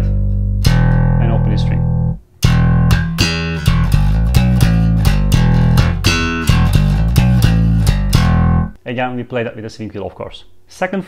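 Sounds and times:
slap bass guitar: 0.0s - 8.8s.

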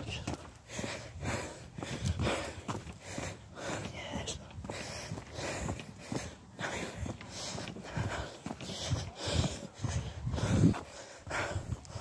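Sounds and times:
footsteps at walking pace: 0.0s - 12.0s.

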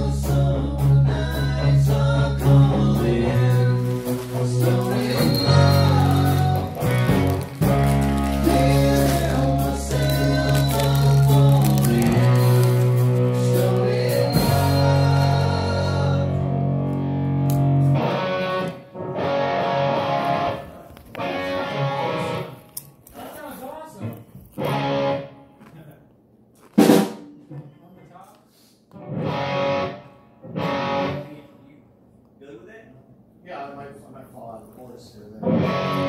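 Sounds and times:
guitar strumming: 2.4s - 22.8s, 24.6s - 25.6s, 29.0s - 31.4s, 35.4s - 36.0s.

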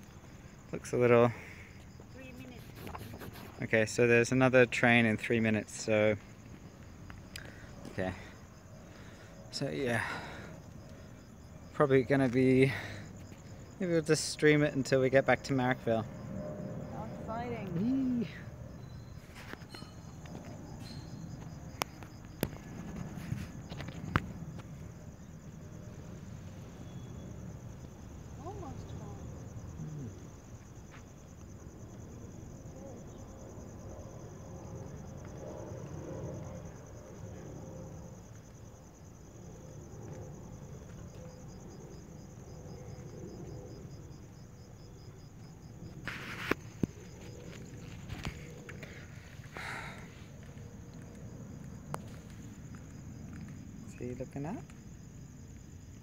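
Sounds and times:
insects chirring: 0.0s - 56.0s.

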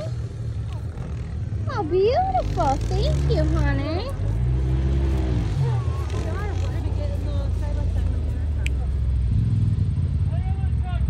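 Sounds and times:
utility vehicle engine revving: 0.0s - 11.0s.

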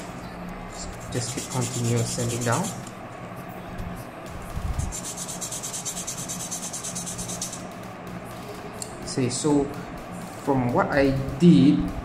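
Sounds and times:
plastic part sanded by hand: 1.0s - 2.8s, 4.7s - 7.6s.

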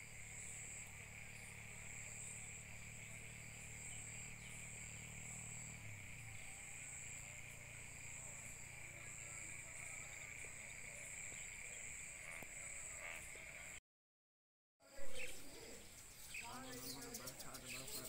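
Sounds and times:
insects chirring: 0.0s - 13.8s, 14.9s - 18.0s.

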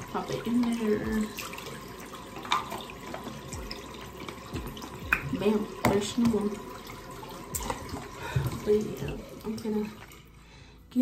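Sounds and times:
tap water running into sink: 0.0s - 10.5s.

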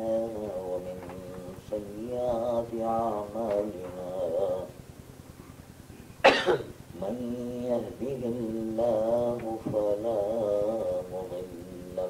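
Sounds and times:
person coughing: 6.2s - 6.8s.

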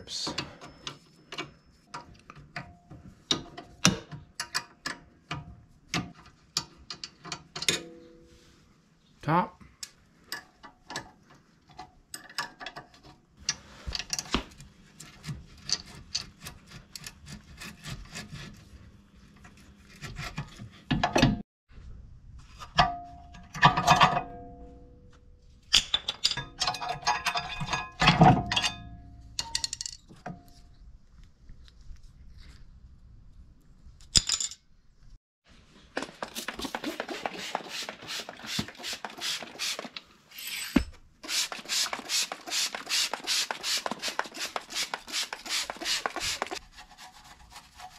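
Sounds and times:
brush scrubbing metal: 36.2s - 40.0s, 41.2s - 47.9s.

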